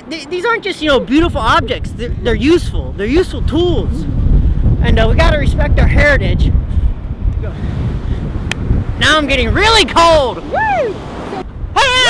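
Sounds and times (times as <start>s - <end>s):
ocean surf: 0.0s - 12.0s
wind buffeting microphone: 0.0s - 12.0s.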